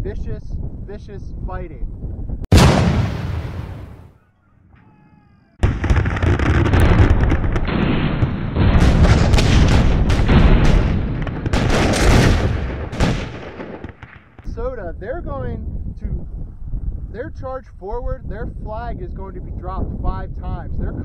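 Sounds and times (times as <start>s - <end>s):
heavy boom: 2.5s - 4.2s, 5.6s - 14.6s
musket and cannon fire: 2.5s - 4.2s, 5.6s - 14.5s.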